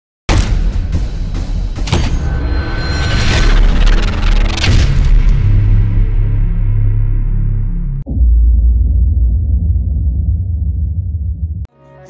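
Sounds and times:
sharp glitchy hits: 1.9s - 8.1s
heavy low drone: 2.1s - 11.7s
deep booms: 3.2s - 11.7s.

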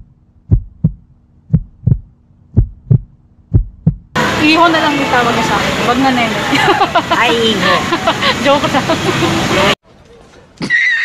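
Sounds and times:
heartbeat thumps: 0.0s - 4.2s
faint steady hum: 0.0s - 9.1s.

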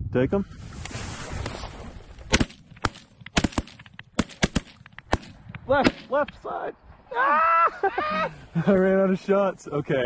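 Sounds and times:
shotgun shots: 2.3s - 6.2s.

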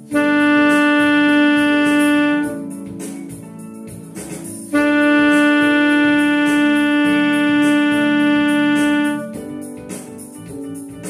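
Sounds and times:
alto saxophone long note: 0.0s - 2.8s, 4.7s - 9.6s
quiet accompaniment: 0.0s - 11.0s.

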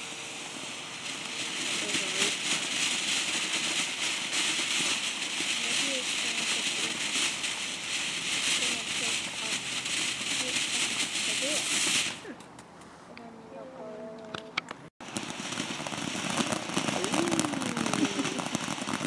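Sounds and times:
firework fountain hissing: 0.0s - 12.4s, 15.0s - 19.0s
firework sparks crackling: 0.0s - 12.8s, 14.3s - 19.0s.

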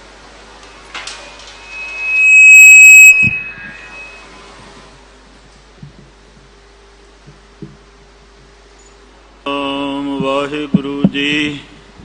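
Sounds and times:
microphone feedback whistle: 0.8s - 4.8s.

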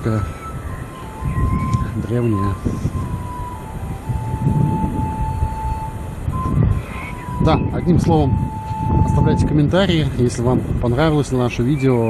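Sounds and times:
thin steady high tone: 0.0s - 10.1s
wind buffeting microphone: 0.0s - 12.0s.

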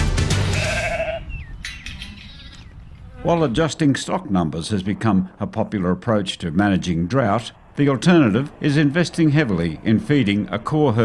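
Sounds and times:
theme music: 0.0s - 0.9s
sheep bleating: 0.4s - 1.3s.

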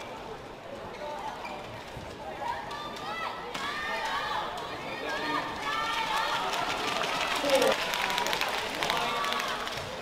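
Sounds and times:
crowd murmur: 2.1s - 10.0s.

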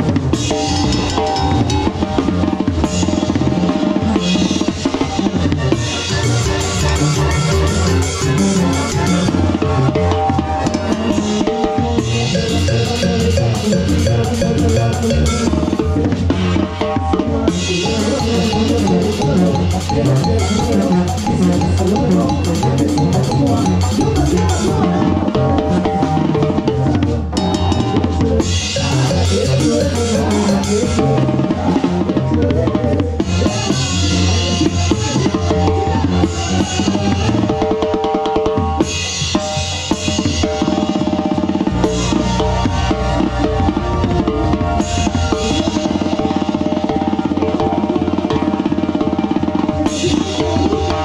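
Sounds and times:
live band music: 0.0s - 51.0s.

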